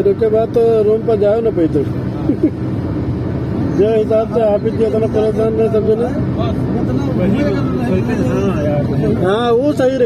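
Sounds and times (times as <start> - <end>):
road and engine drone: 0.0 - 10.0.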